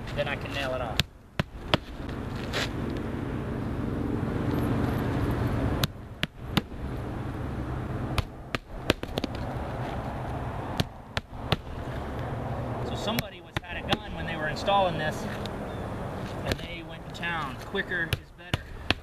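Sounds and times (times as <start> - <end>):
low engine hum: 0.0 - 19.0.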